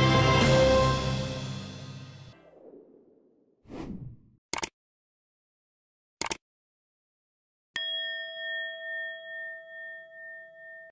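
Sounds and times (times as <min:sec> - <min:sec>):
notification bell ringing: 0:07.8 - 0:10.9.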